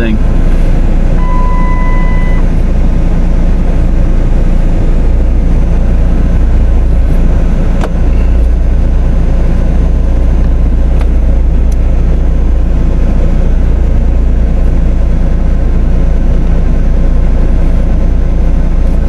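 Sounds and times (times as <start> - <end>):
car engine rumble: 0.0 - 19.0
thin steady beep: 1.2 - 2.5.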